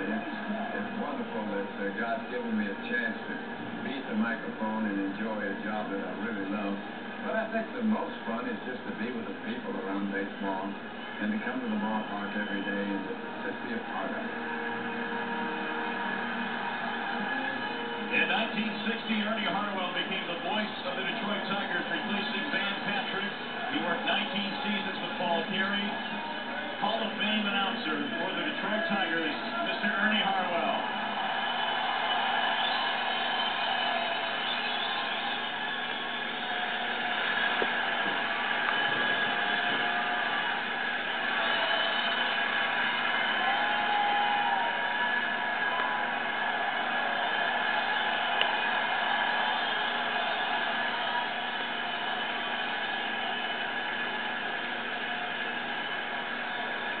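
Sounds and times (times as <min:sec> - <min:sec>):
crowd cheering and applause: 0:10.8 - 0:57.0.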